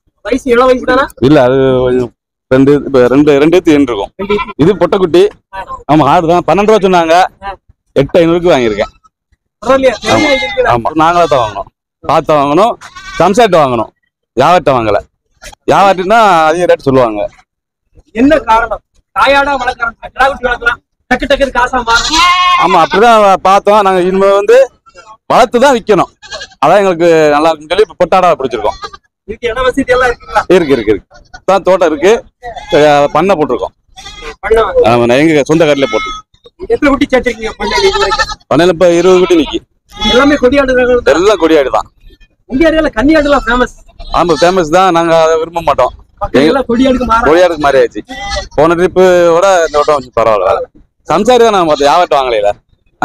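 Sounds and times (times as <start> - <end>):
goats bleating: 4.1 - 4.9, 8.2 - 11.7, 12.8 - 13.9, 21.7 - 23.3, 26.0 - 27.1, 28.2 - 29.2, 30.0 - 42.3, 42.9 - 45.0, 46.3 - 52.3.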